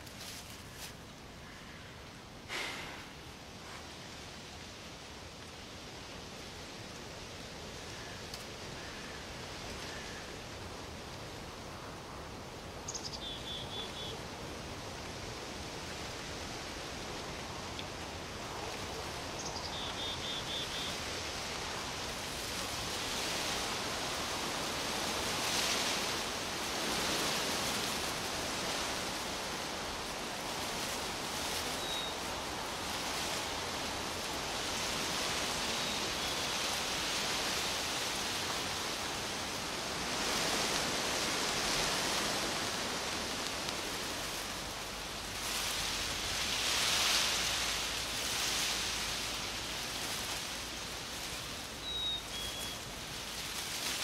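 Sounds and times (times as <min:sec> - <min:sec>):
wind rustling through leaves: 0:00.0 - 0:54.0.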